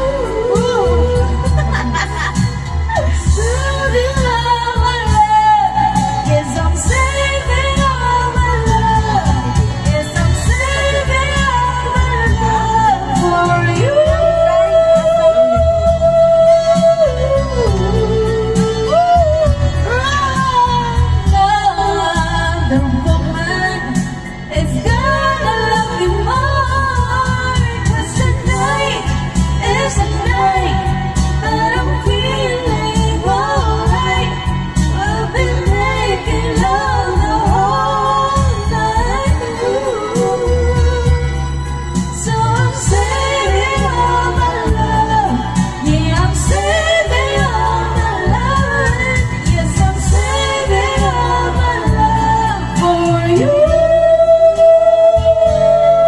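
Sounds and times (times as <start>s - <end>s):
person singing karaoke: 0.0s - 56.0s
pop backing track: 0.0s - 56.0s.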